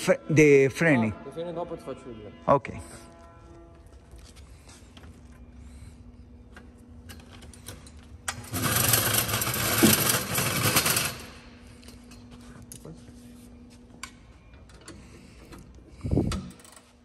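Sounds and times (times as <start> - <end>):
rattling power tool: 8.3 - 11.4.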